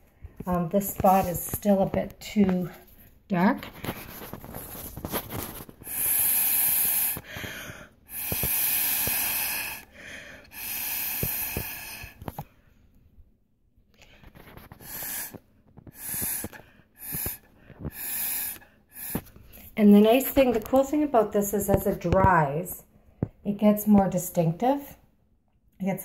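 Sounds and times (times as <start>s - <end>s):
breath blown through a straw: 3.8s - 12.4s, 14.5s - 19.8s.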